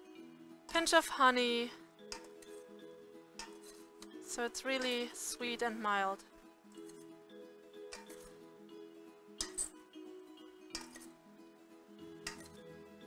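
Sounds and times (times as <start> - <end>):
quiet background music: 0.0 - 13.0
metal servers clinking on steel bowl: 3.4 - 3.8, 7.9 - 8.4, 9.4 - 9.7, 10.7 - 11.1, 12.2 - 12.6.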